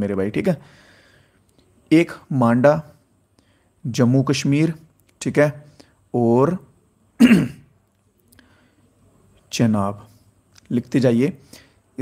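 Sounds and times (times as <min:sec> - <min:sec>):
man clearing his throat: 0:07.2 - 0:07.7.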